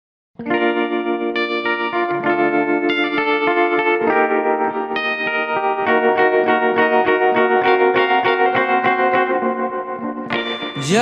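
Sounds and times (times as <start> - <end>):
guitar chords picked: 0.4 - 11.0.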